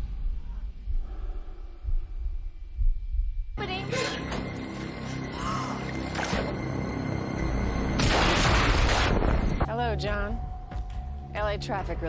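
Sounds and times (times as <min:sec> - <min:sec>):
explosion blast: 0:08.0 - 0:09.6.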